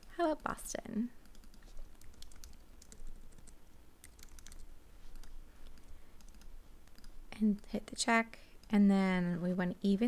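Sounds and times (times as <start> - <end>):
computer keyboard typing: 1.2 - 7.8.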